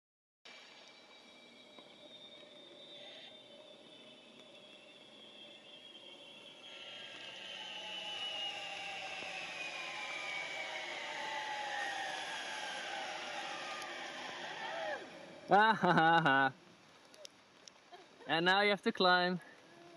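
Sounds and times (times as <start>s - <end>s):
zipline pulley whirring on cable: 0.5s - 16.3s.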